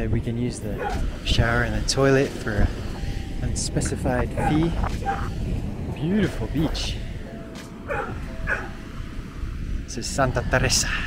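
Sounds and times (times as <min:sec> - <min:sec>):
dog yipping: 0:07.9 - 0:08.7.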